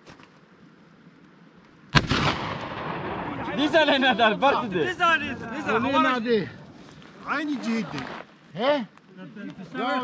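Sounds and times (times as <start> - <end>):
gunshot echoing: 1.9 - 3.8.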